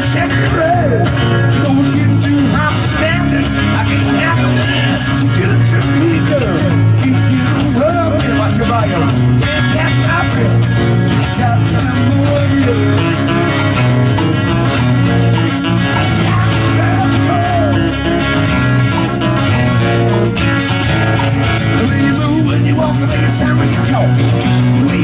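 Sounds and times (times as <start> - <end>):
acoustic guitars strumming: 0.0 - 25.0.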